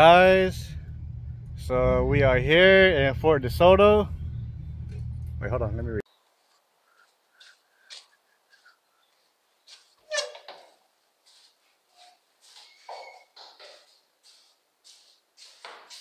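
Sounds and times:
footsteps on tiled floor: 6.4s - 16.0s.

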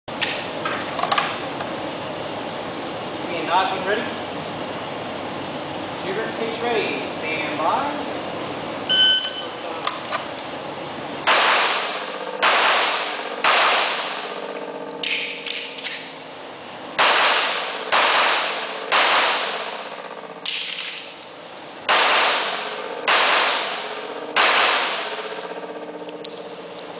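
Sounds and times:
shot timer beep: 8.9s - 9.6s
handgun shots echoing indoors: 11.2s - 16.1s, 17.0s - 21.2s, 21.9s - 26.4s.

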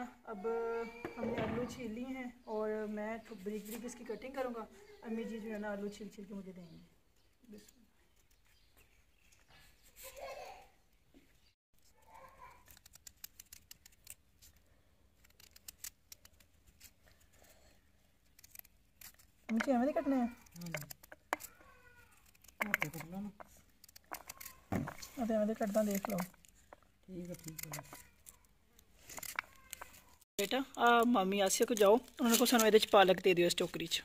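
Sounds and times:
knife cutting raw potato: 18.2s - 30.1s.

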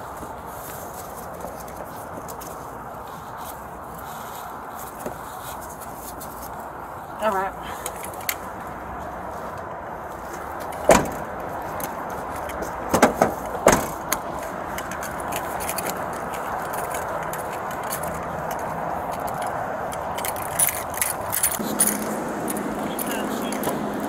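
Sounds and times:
rustling footsteps: 0.0s - 24.0s
keys and gear rattling: 7.6s - 24.0s
small jangling clicks: 10.2s - 23.9s
car door slamming: 10.8s - 11.4s, 12.8s - 14.2s
knocks against car door: 12.9s - 14.0s.

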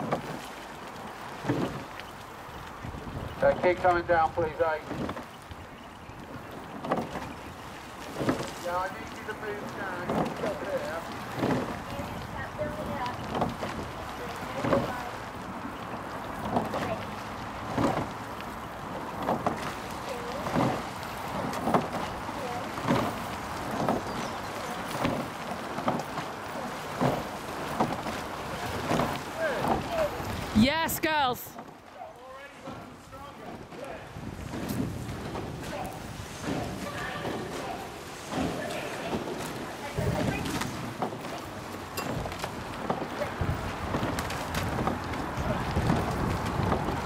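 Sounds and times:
rowing strokes in rhythm: 0.0s - 47.0s
wind on microphone: 2.5s - 4.3s, 34.1s - 37.5s, 42.0s - 47.0s.

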